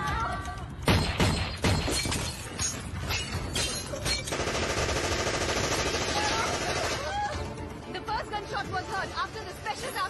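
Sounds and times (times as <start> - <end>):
glass shattering: 0.9 - 4.3.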